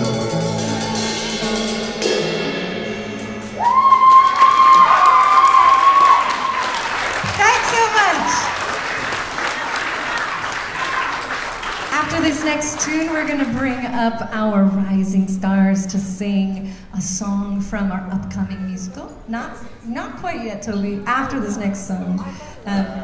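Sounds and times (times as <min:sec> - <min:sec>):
audience applause and cheering: 0:00.0 - 0:01.6, 0:03.4 - 0:13.5
live band final chord: 0:00.0 - 0:04.7
long high cheer: 0:03.6 - 0:11.9.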